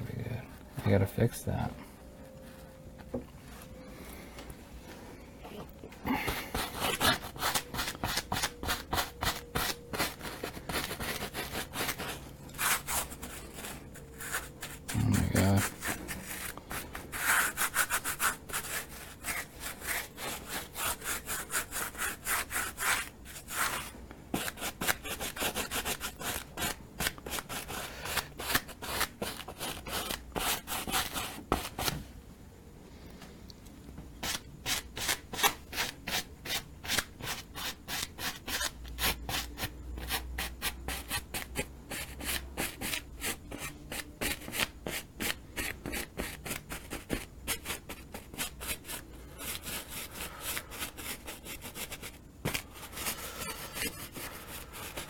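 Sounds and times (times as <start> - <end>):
rubbing strokes on a painting: 6.1 - 31.9, 34.2 - 55.0.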